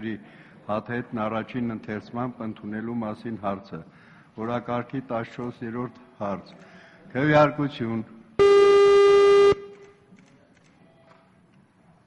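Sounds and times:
steady electronic beep: 0:08.4 - 0:09.7.

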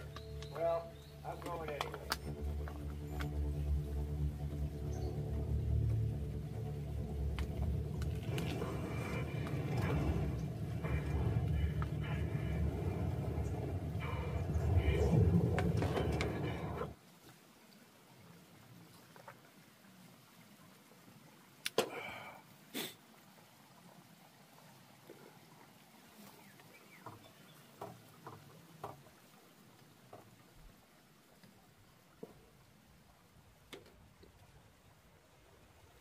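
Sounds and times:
film music through small speaker: 0:00.0 - 0:17.0
low rumble: 0:00.0 - 0:17.0.

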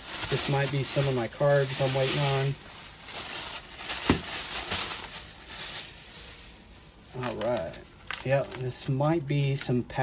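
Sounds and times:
plastic wrapping rustling: 0:00.0 - 0:09.7.

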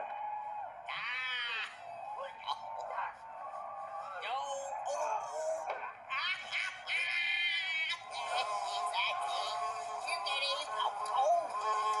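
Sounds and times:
tinny background music: 0:07.9 - 0:12.0.

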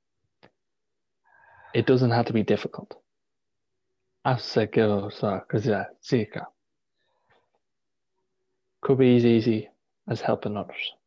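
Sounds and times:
man speaking: 0:01.8 - 0:03.0, 0:04.2 - 0:06.6, 0:08.8 - 0:11.0.

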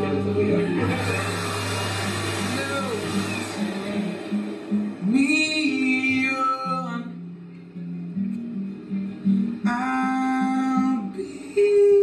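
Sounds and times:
person singing: 0:00.0 - 0:07.2, 0:09.4 - 0:12.0
acoustic guitar strumming: 0:00.0 - 0:12.0.

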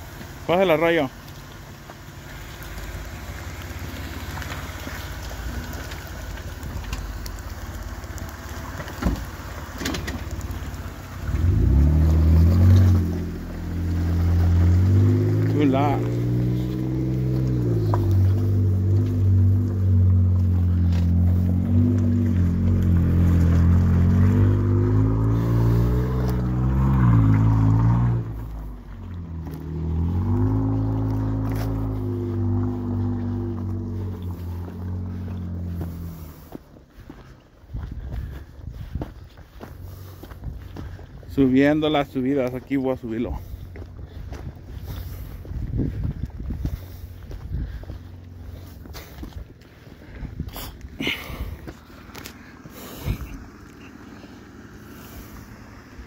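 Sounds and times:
off-road engine revving: 0:00.0 - 0:56.0.

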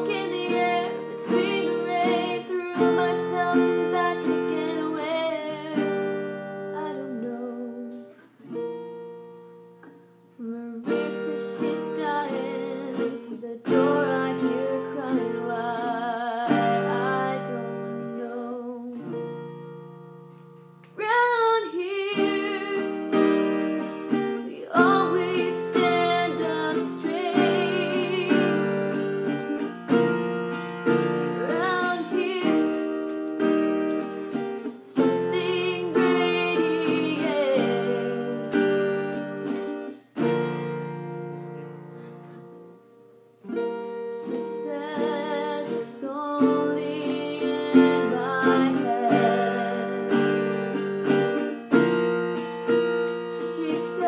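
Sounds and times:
woman singing: 0:00.0 - 0:08.3, 0:10.4 - 0:19.3, 0:20.8 - 0:29.7, 0:30.9 - 0:39.4, 0:43.9 - 0:51.4, 0:52.7 - 0:54.0
acoustic guitar strumming: 0:00.0 - 0:54.0.

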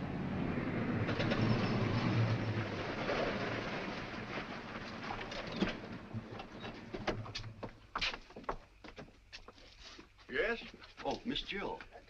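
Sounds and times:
car engine and road noise: 0:00.0 - 0:08.0.

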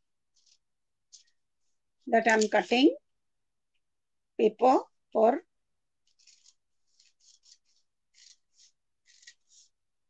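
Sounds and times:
scissors snipping paper: 0:06.0 - 0:09.8.

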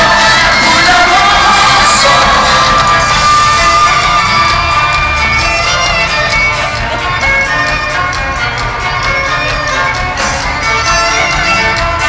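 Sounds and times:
crowd cheering and shouting: 0:00.0 - 0:12.0
live band playing loudly: 0:00.0 - 0:12.0.

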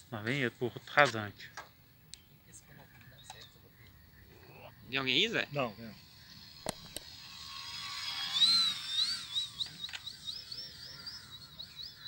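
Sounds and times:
model plane motor whine: 0:05.1 - 0:12.0.

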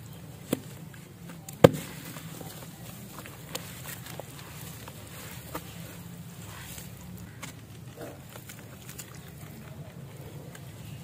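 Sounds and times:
dirt crushed in muddy water: 0:01.6 - 0:11.0.

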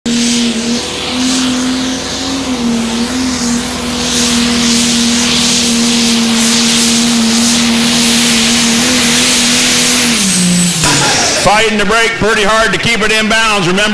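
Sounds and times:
tractor diesel engine at high revs: 0:00.0 - 0:11.8.

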